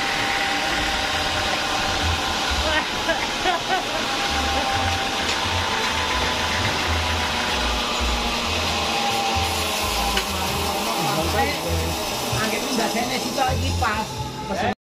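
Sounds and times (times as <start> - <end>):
band sawmill whining: 0.0 - 14.8
voices talking: 10.5 - 14.8.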